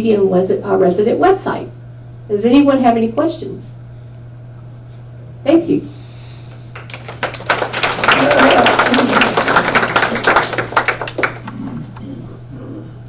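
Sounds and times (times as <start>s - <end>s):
audience applauding: 6.5s - 11.9s.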